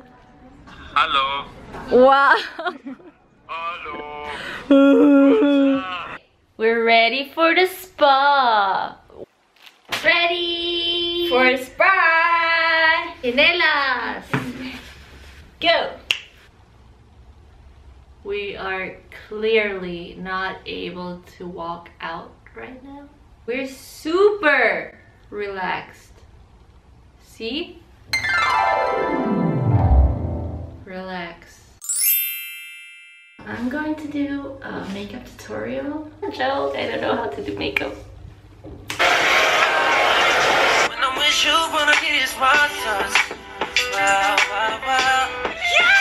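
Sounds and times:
finger snap: 0:16.1 - 0:16.4.

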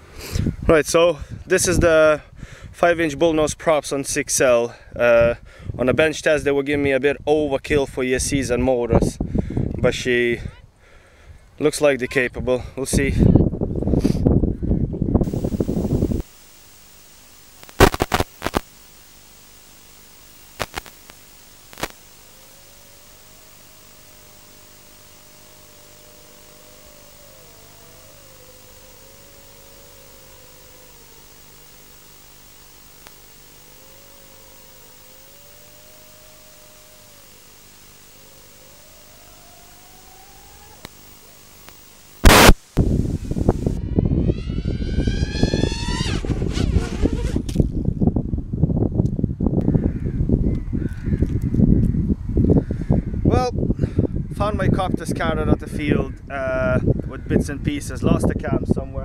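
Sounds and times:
gusty wind on microphone: 0:08.2 - 0:10.6, 0:12.9 - 0:16.3, 0:42.2 - 0:59.0
video link hiss: 0:15.2 - 0:46.1
gliding whine: 0:15.2 - 0:47.6
faint wavering tone: 0:21.2 - 0:42.2
sudden loud burst: 0:42.2 - 0:42.8.

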